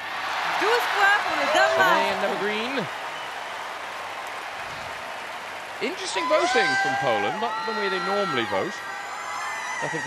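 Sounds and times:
crowd applauding and cheering: 0:00.0 - 0:10.0.

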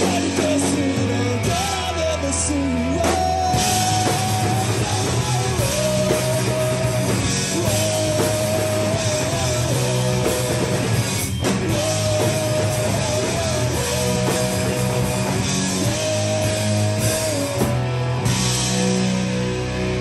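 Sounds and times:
rock band playing loud: 0:00.0 - 0:20.0.

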